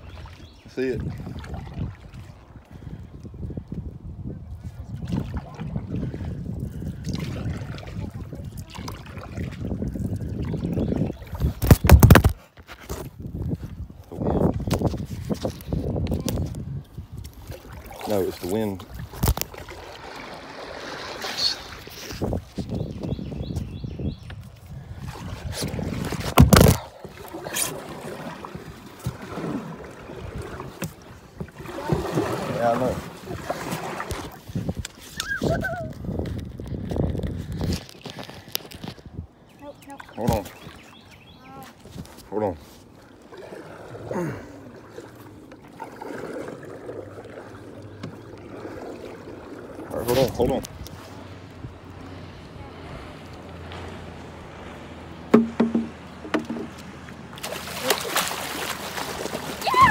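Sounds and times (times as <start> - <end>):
water lapping against hull: 0.0 - 59.9
sharp knock: 55.3 - 56.6
dull thumps: 55.3 - 56.8.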